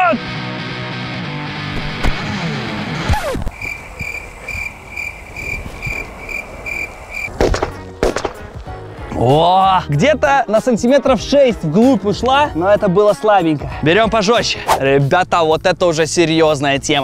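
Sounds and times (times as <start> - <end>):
background music: 0.0 - 3.4, 6.1 - 17.0
firecracker bangs: 7.3 - 8.6.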